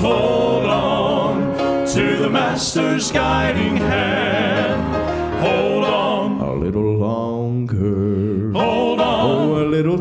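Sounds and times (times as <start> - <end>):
male vocal quartet singing: 0.0 - 10.0.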